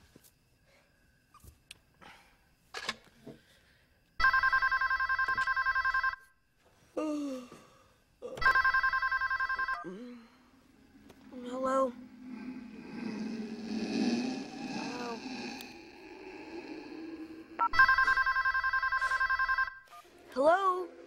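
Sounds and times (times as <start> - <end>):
telephone ringing: 4.2 - 6.3, 8.4 - 9.9, 17.6 - 20.1.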